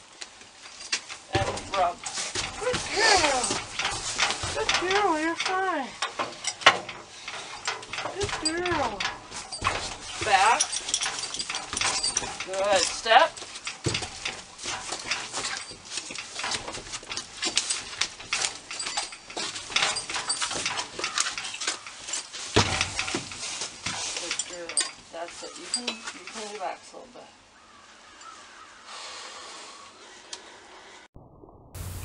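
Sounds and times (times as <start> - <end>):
horse hooves on trailer floor: 0.0 - 26.9.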